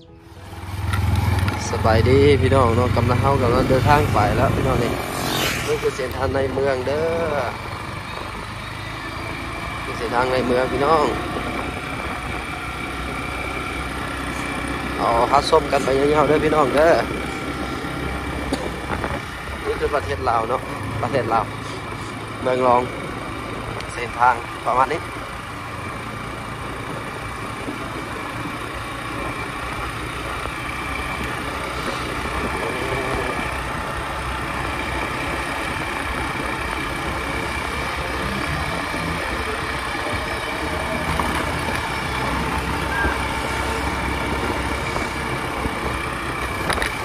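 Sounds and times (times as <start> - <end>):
motorcycle engine running: 0.0 - 47.0
wind and road noise: 0.0 - 47.0.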